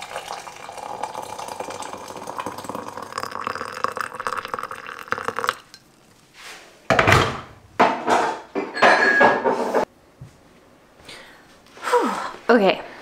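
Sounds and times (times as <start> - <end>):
water pouring into a cup: 0.0 - 6.2.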